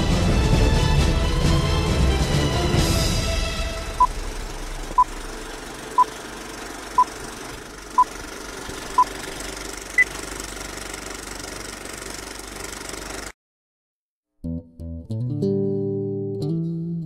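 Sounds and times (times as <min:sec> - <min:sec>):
rattling film projector: 0:05.2 - 0:13.3.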